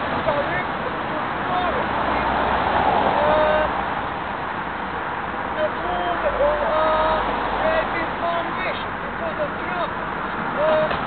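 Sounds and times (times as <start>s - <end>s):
street noise rush: 0.0s - 11.0s.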